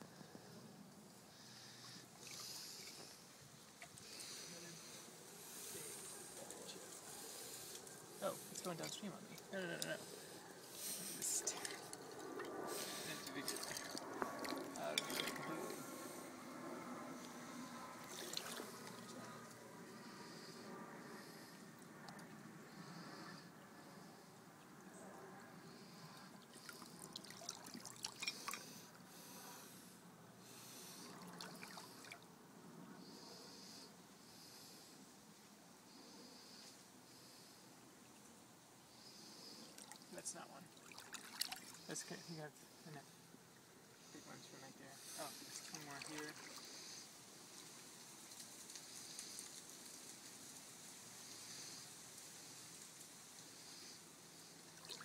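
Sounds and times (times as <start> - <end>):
water trickling over gravel: 11.2 - 15.5.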